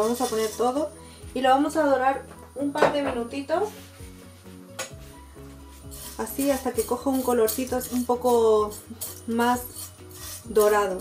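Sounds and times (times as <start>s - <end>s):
faint sizzling: 0.0s - 11.0s
soft background music: 0.0s - 11.0s
metal spoon clinking against pot: 5.9s - 11.0s.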